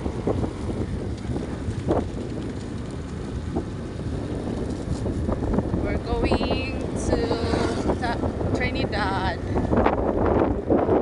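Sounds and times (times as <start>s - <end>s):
low vehicle rumble: 0.0s - 11.0s
wind on microphone: 0.0s - 11.0s.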